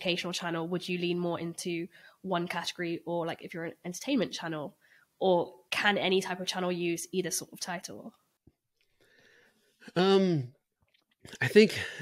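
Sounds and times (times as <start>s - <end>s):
faint breath: 1.9s - 2.2s, 8.9s - 9.9s.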